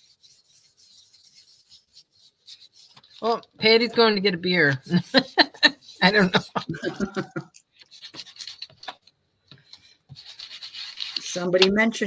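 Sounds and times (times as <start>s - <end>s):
paper scraps rustling: 1.1s - 3.5s, 7.8s - 11.7s.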